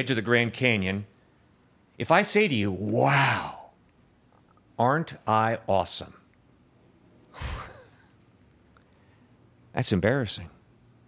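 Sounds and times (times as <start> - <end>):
person exhaling breathily: 7.3 - 8.0.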